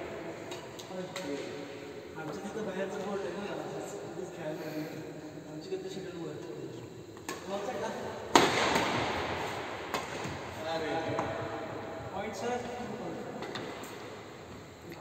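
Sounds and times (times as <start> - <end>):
rackets striking shuttlecock: 9.8 - 10.5.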